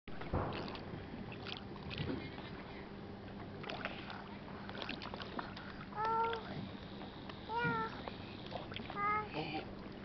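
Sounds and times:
water sloshing: 0:00.1 - 0:10.0
child making high-pitched sounds: 0:06.0 - 0:06.5, 0:07.5 - 0:08.0, 0:08.9 - 0:09.6.

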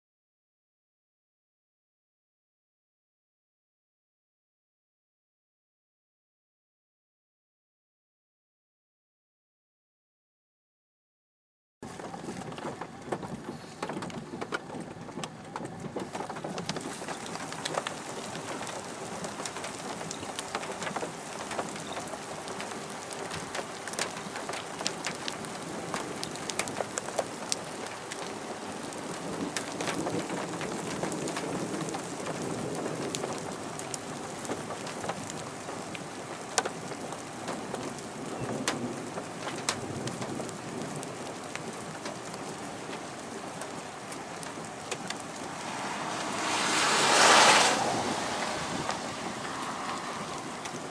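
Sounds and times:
rain falling: 0:11.8 - 0:50.9.

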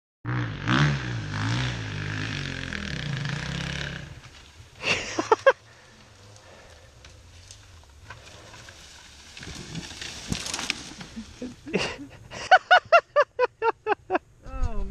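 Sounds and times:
dirt bike engine revving: 0:00.3 - 0:07.3
person laughing: 0:04.8 - 0:05.6, 0:11.1 - 0:14.2.

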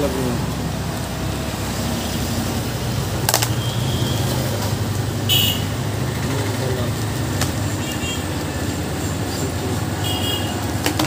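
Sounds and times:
sharp clicks: 0:03.3 - 0:03.6.

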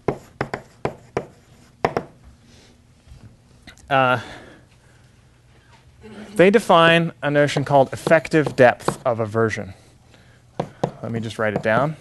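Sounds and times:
chalk tapping and scraping on blackboard: 0:00.0 - 0:02.1, 0:07.8 - 0:09.1.

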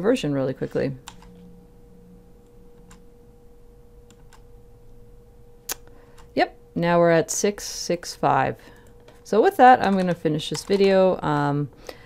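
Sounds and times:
faint steady hum: 0:00.0 - 0:12.0
computer keyboard key presses: 0:09.8 - 0:11.0.

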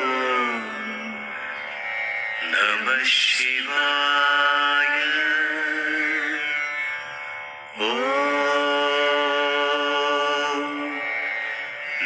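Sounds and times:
person chanting to music: 0:00.0 - 0:12.0.

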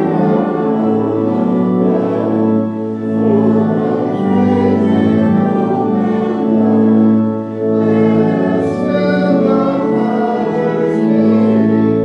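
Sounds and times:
slow keyboard chords: 0:00.0 - 0:12.0.

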